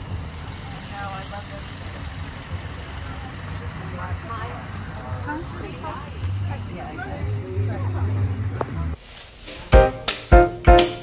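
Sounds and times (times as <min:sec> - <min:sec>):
indistinct chatter: 0:00.0 - 0:09.9.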